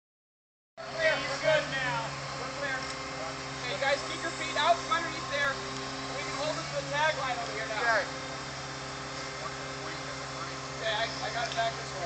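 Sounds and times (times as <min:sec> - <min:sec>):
crew voices: 0:00.8 - 0:12.0
diesel engine droning: 0:00.8 - 0:12.0.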